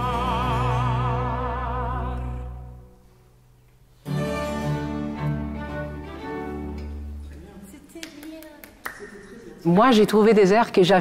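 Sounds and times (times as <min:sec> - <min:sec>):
string orchestra playing chords: 0:04.0 - 0:07.5.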